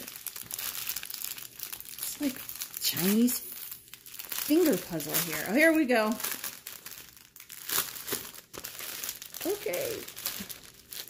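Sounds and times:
plastic bags crinkling: 0.0 - 11.0.

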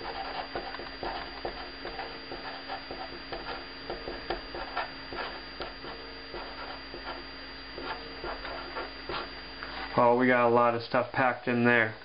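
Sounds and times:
marker scratching on paper: 0.0 - 9.3.

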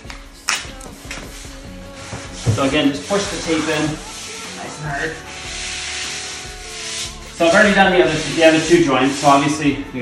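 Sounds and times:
hands rubbing tape down: 0.4 - 9.7.

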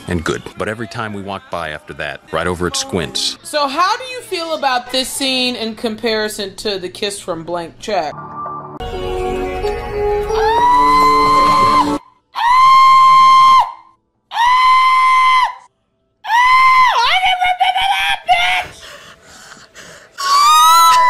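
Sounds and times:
lower wavering cry: 10.0 - 15.3
person shrieking: 20.2 - 21.0.

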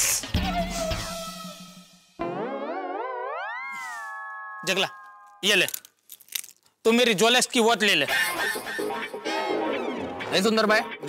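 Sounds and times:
warbling rising comic tone: 2.2 - 4.2.

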